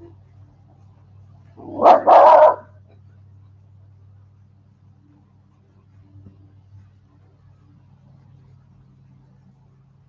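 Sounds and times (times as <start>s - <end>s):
dog barking: 1.6s - 2.7s.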